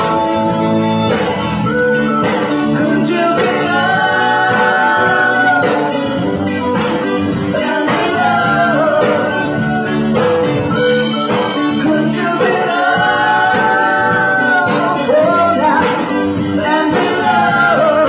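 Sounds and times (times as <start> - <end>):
live rock band playing: 0.0 - 18.0
woman singing into microphone: 11.8 - 18.0.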